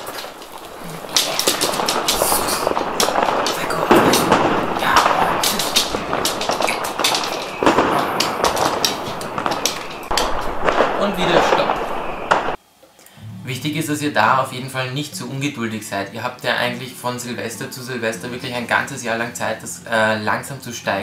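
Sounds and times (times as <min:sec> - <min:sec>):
firecrackers through small speaker: 0:00.0 - 0:12.6.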